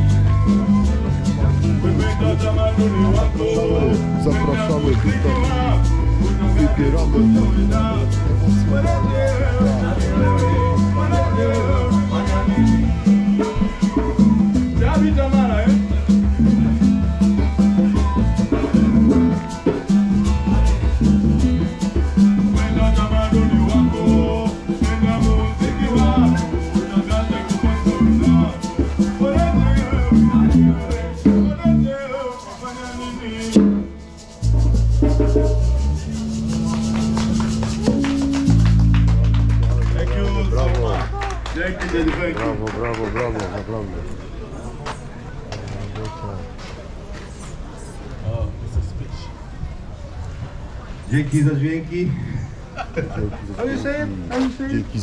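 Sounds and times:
steady bass line: 0.0 - 32.0, 34.4 - 41.7
shaker rhythm: 0.0 - 42.4
live band music: 0.0 - 43.0.

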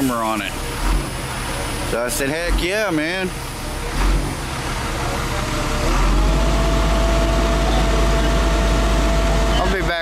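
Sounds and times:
truck engine whining: 0.0 - 10.0.

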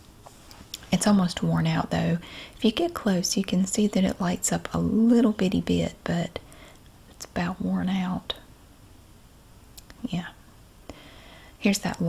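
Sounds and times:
woman speaking softly: 0.8 - 6.4, 7.2 - 8.5, 9.9 - 10.4, 11.6 - 12.0.

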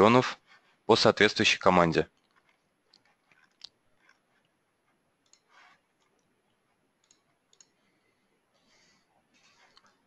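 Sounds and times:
computer mouse clicks: 5.2 - 6.4, 7.0 - 7.9.

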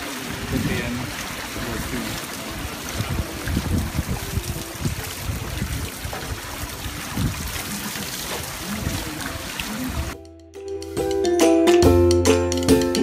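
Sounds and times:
water streaming and splashing: 0.0 - 10.2.

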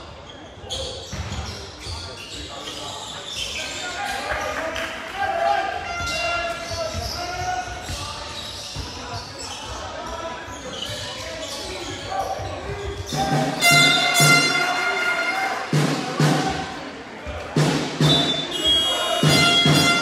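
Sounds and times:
people shouting: 18.1 - 20.0.

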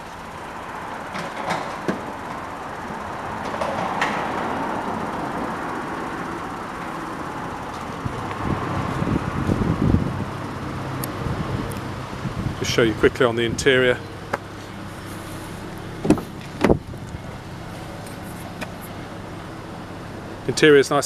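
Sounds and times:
road traffic noise: 0.0 - 21.0.

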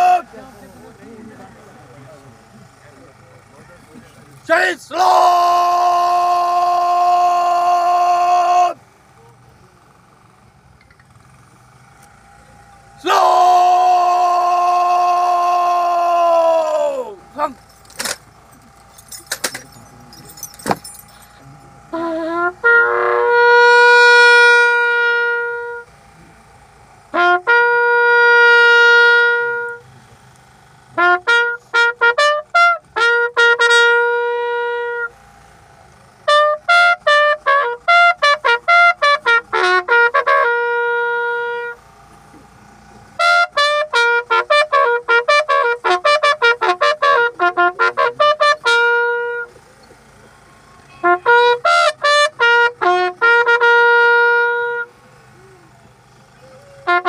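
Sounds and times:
bugle long held note: 0.0 - 1.0, 4.5 - 8.8, 12.1 - 18.2, 19.0 - 29.9, 30.6 - 35.4, 36.2 - 41.9, 42.6 - 49.6, 50.3 - 57.0
faint background murmur: 0.2 - 4.5, 8.8 - 13.0, 25.4 - 27.2, 47.4 - 51.5, 54.6 - 57.0.

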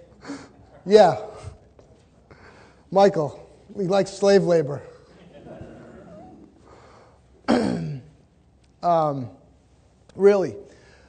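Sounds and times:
man clearing his throat: 7.4 - 8.2.

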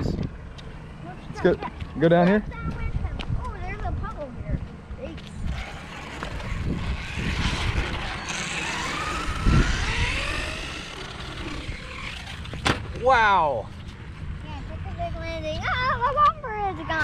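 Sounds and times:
electric motor whine: 5.3 - 12.8
thump: 12.5 - 12.9.

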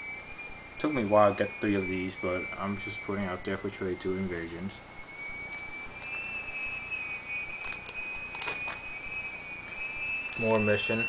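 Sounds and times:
high-pitched whine: 0.0 - 11.0
faint clicks: 5.5 - 6.1
plastic pages rustling: 7.6 - 8.8.

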